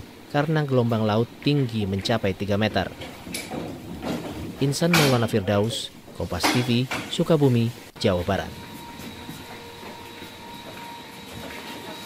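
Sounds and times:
low background noise: 0:00.0 - 0:10.8.

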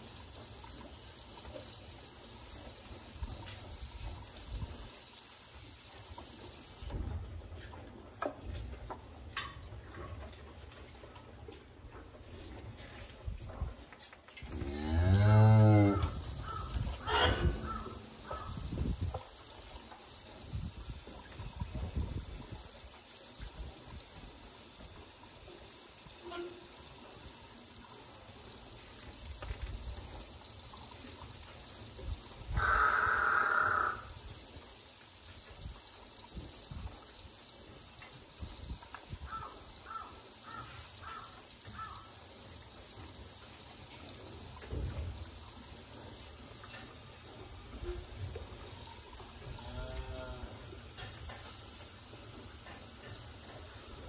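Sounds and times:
cattle mooing: 0:14.6 - 0:17.6.

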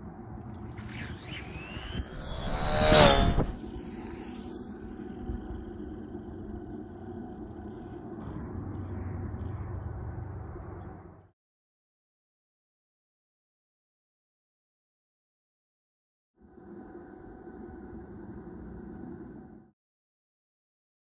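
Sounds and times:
electric rc car whine passing: 0:00.1 - 0:10.7
steady low rumble: 0:02.0 - 0:11.3.

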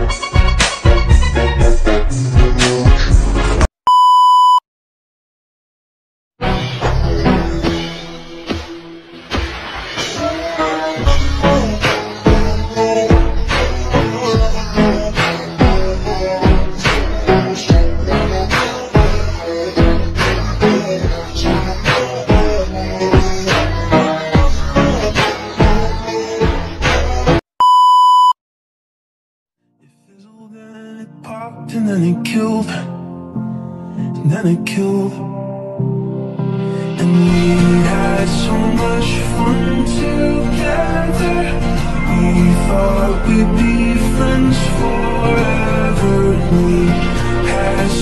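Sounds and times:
music: 0:00.0 - 0:03.7, 0:06.4 - 0:27.4, 0:29.6 - 0:48.0
high censor bleep: 0:03.9 - 0:04.6, 0:27.6 - 0:28.4
high electronic beep: 0:03.9 - 0:04.6, 0:27.6 - 0:28.4.

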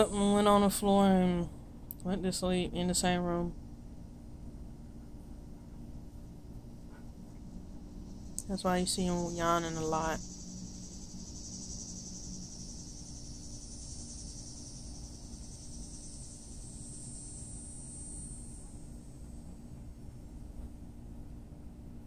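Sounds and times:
high-pitched insect chorus: 0:00.0 - 0:03.6, 0:06.1 - 0:21.7
low steady hum: 0:00.0 - 0:22.0.

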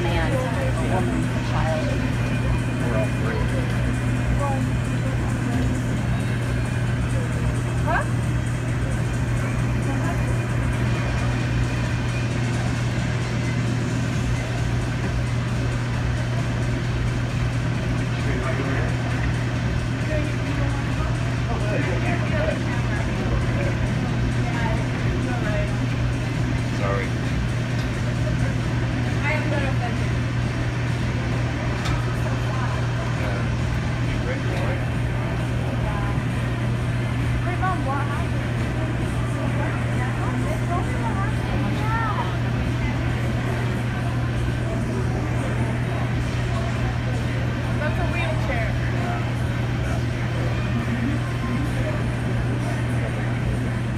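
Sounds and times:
helicopter hovering overhead: 0:00.0 - 0:53.9.

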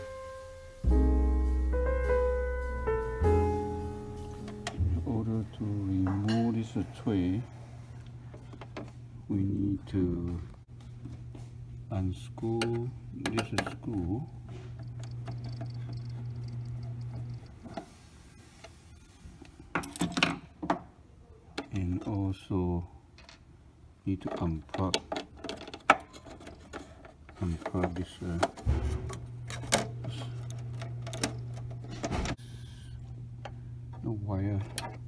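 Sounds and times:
low hum with fine ticking: 0:07.9 - 0:17.8, 0:27.3 - 0:35.0
clatter of small hard parts: 0:24.2 - 0:32.4
screwdriver undoing screw in metal: 0:24.2 - 0:32.4.

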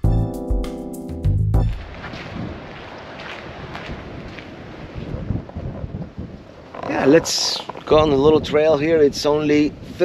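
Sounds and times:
wind buffeting microphone: 0:01.7 - 0:10.0.

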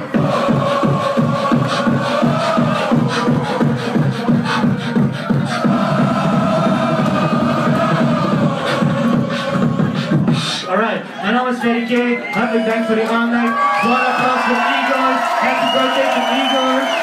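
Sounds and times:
beatboxing beat: 0:00.0 - 0:10.9.

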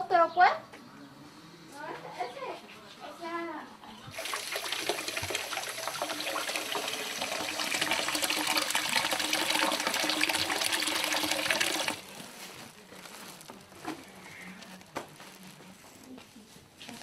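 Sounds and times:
water running into basin: 0:04.1 - 0:12.1.

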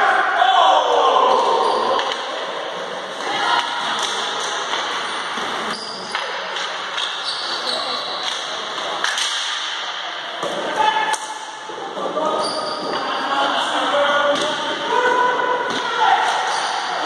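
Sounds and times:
players shouting: 0:00.0 - 0:02.6
sticks and ball clacking: 0:01.9 - 0:02.4.

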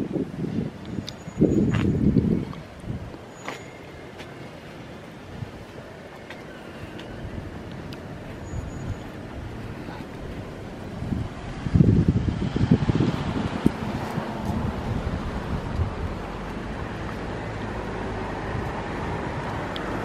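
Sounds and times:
wind buffeting microphone: 0:00.0 - 0:03.3, 0:04.8 - 0:20.0.

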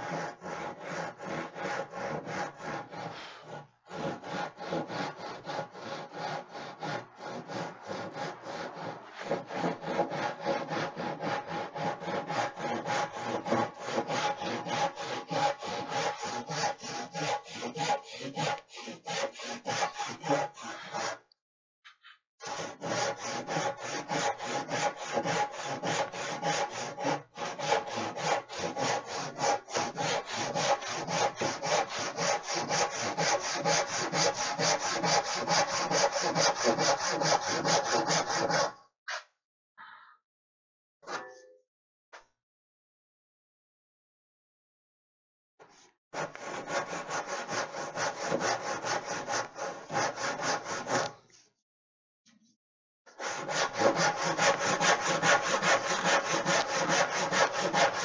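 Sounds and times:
handsaw ripping a board: 0:00.0 - 0:21.2, 0:22.4 - 0:39.2, 0:46.2 - 0:51.1, 0:53.2 - 0:58.0.

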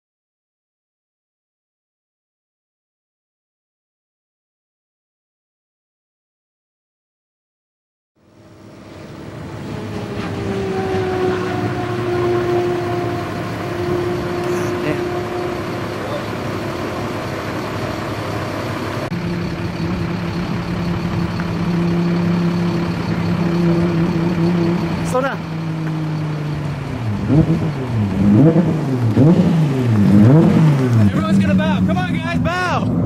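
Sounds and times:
car engines running: 0:08.2 - 0:33.0
deep car engine close by: 0:08.2 - 0:33.0
wind: 0:08.2 - 0:33.0.

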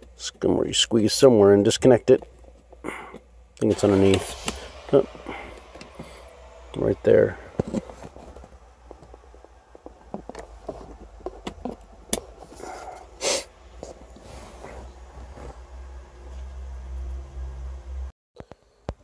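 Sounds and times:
low steady hum: 0:00.0 - 0:18.9
breathy sniff: 0:04.3 - 0:06.5, 0:12.5 - 0:13.6.

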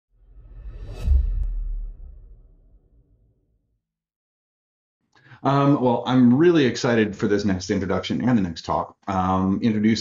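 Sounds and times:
whoosh: 0:00.1 - 0:03.5
deep low boom: 0:00.3 - 0:03.4.

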